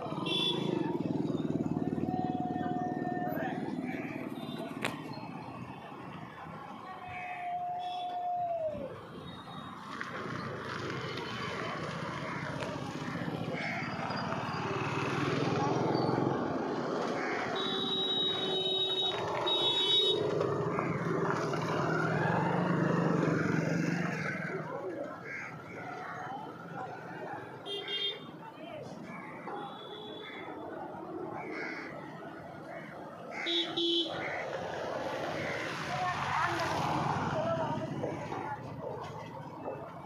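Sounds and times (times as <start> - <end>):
motorcycle engines: 0.0 - 40.0
people's voices: 0.0 - 40.0.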